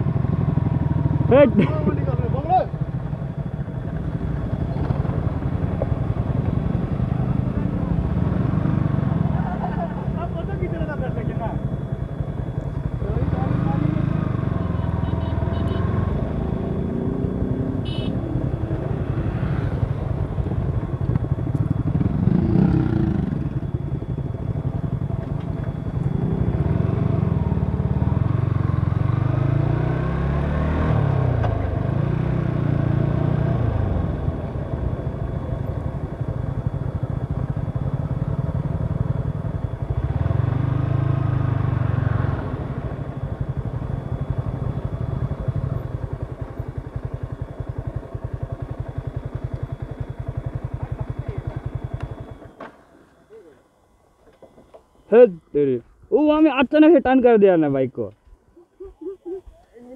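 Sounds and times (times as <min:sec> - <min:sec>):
motorcycle engine rumble: 0:00.0 - 0:59.9.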